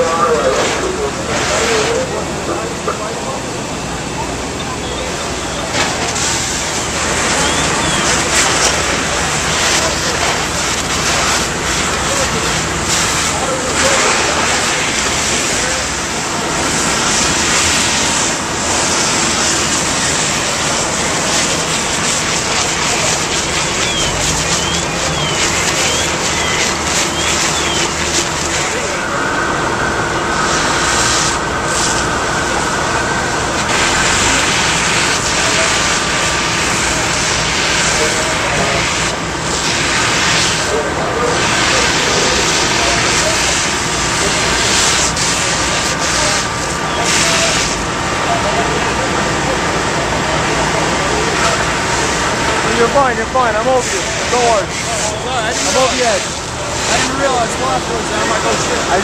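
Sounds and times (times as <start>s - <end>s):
diesel engines running pumps: 0.0s - 59.0s
water streams pouring: 6.1s - 48.1s.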